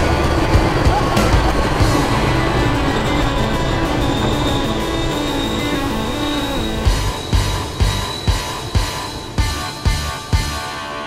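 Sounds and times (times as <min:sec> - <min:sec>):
loud ride soundtrack music: 0:00.0 - 0:11.0
ride vehicle rumbling: 0:00.0 - 0:11.0.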